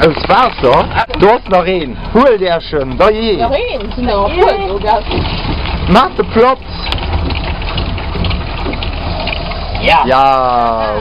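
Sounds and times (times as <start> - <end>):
low rumble: 0.0 - 11.0
water spraying into a pond: 5.3 - 11.0.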